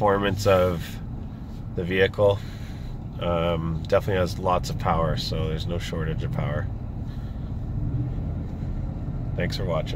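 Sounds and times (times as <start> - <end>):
engine rumble inside truck cab: 0.0 - 9.9.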